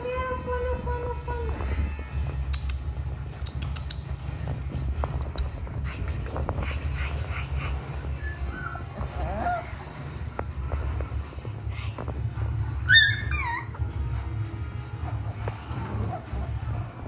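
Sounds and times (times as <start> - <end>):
dogs whining: 7.8 - 10.4, 12.7 - 14.1, 15.0 - 17.0
dog yelping: 8.2 - 9.8, 12.8 - 13.8.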